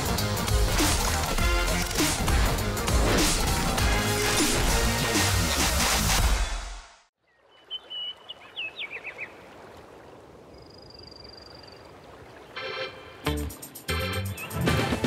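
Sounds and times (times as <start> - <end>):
birds chirping and trilling: 7.2 - 9.5, 10.4 - 13.0.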